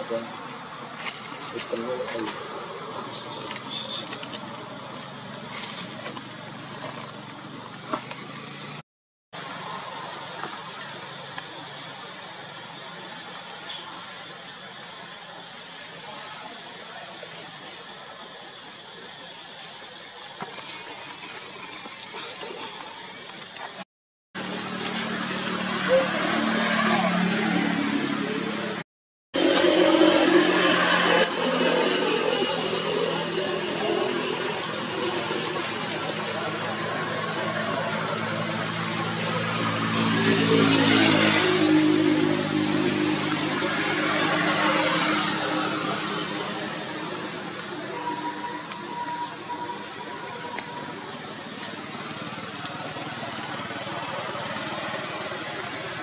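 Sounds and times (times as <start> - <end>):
vehicle engine passing by: 24.4 - 28.8, 29.4 - 47.6.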